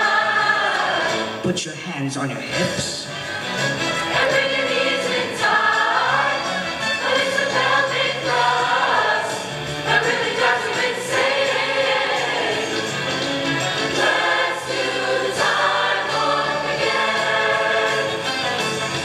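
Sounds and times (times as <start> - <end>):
choir singing rock and roll: 0.0 - 1.4, 3.2 - 19.0.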